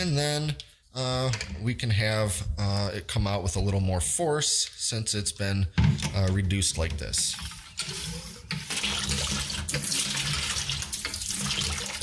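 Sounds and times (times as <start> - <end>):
water splashing into a bucket: 7.8 - 12.0.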